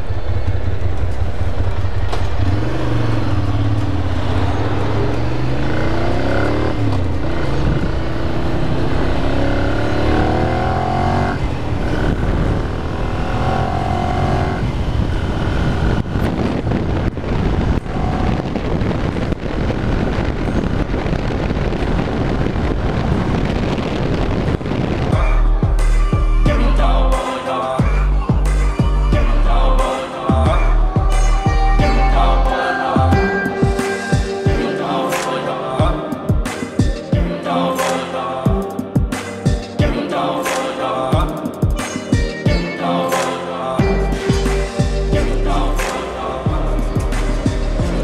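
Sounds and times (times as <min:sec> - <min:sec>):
motorcycle engine accelerating: 0:00.0 - 0:26.6
wind noise on camera: 0:11.2 - 0:25.2.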